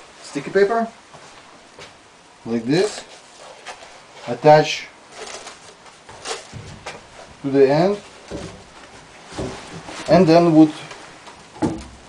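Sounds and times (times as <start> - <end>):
plastic wrap rustling: 2.7 - 12.0.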